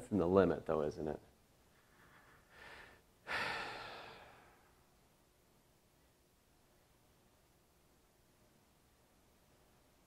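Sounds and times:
person sighing: 2.5s - 4.7s.

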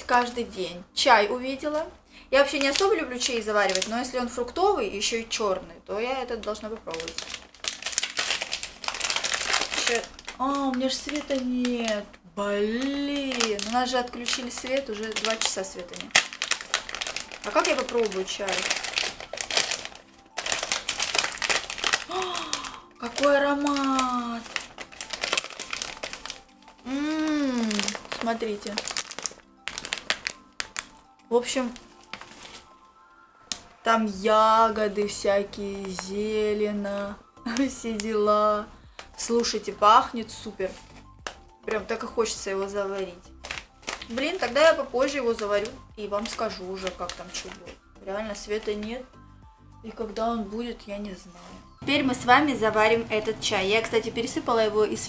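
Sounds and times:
plastic packet crinkling: 2.4s - 4.2s, 6.3s - 33.7s, 34.7s - 36.5s, 37.5s - 49.1s.

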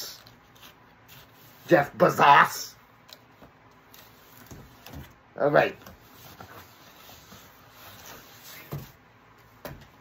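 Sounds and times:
cardboard rustling and scraping: 0.0s - 1.9s, 3.8s - 10.0s.

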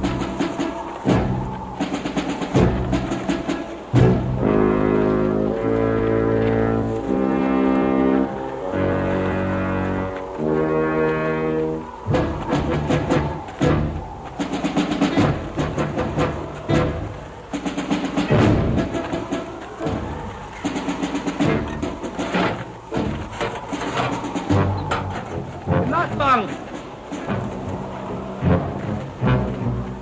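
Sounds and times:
drum and timpani hits: 0.0s - 4.8s, 12.1s - 27.7s
dramatic orchestral score: 0.0s - 30.0s
sustained brass notes: 0.0s - 30.0s.

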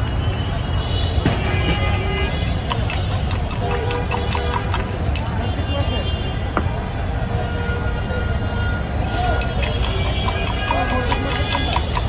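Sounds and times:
low rumble of street traffic: 0.0s - 12.0s
metal spoon clinking against glass: 1.8s - 5.4s, 9.1s - 12.0s.

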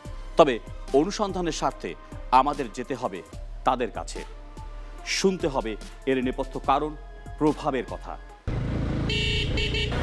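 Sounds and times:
background music: 0.0s - 10.0s
motorcycle running: 8.5s - 10.0s
vehicle horn: 9.0s - 10.0s.

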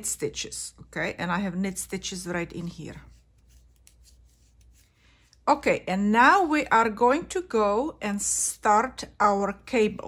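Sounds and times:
knitting needles and yarn handling: 2.2s - 5.6s.

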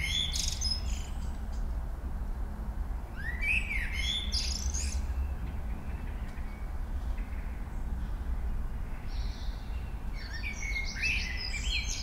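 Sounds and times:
songbird chirping and whistling: 0.0s - 1.1s, 3.2s - 5.2s.

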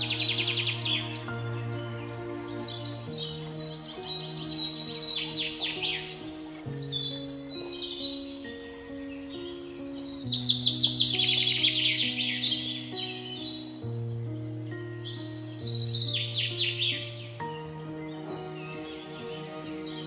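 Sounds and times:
birds twittering: 0.0s - 20.0s
slow low background music: 0.0s - 20.0s.

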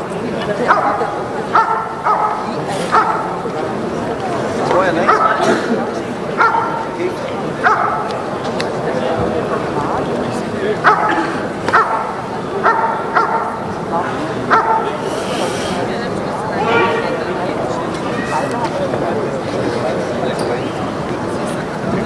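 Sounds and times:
dog barking: 0.7s - 3.4s, 5.0s - 5.4s, 6.4s - 6.9s, 7.6s - 8.1s, 10.8s - 13.7s, 14.5s - 15.0s.

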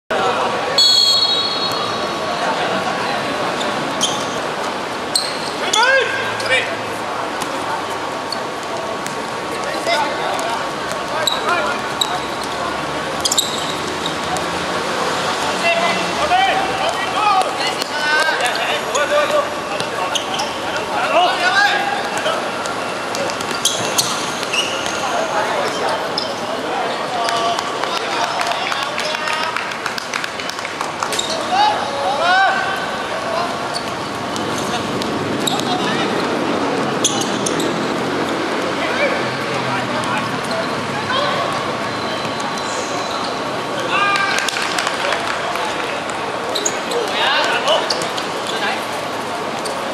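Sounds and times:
players calling out: 0.1s - 49.9s.

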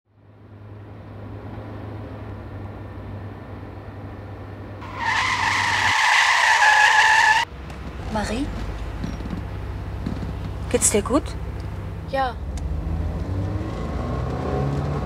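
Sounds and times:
car engine and road hum: 0.1s - 15.0s
tyres screeching: 4.8s - 10.9s.

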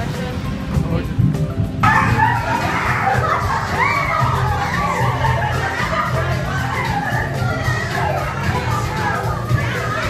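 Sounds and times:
music with low bass: 0.0s - 10.0s
children chattering: 1.7s - 10.0s
children shouting: 1.8s - 10.0s.

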